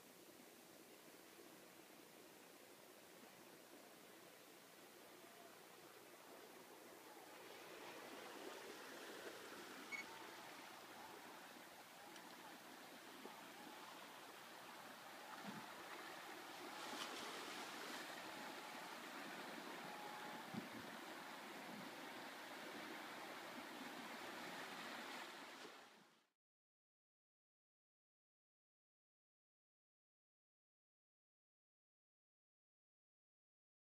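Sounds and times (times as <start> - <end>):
sea washing against rocky shore: 5.7 - 25.8.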